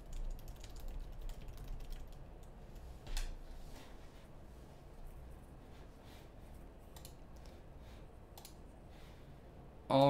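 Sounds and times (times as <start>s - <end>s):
computer clicks: 6.9s - 7.5s, 8.4s - 8.6s.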